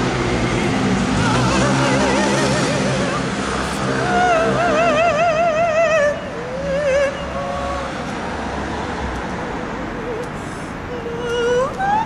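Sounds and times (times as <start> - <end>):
low vehicle rumble: 0.0 - 12.0
street traffic: 0.0 - 12.0
woman singing with vibrato: 0.4 - 8.2, 9.9 - 12.0.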